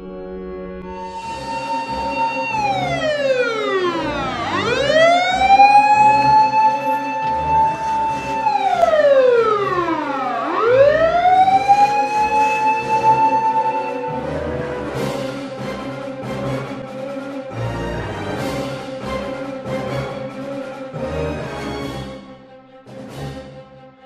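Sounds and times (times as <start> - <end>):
emergency siren wailing: 0.6 - 18.5.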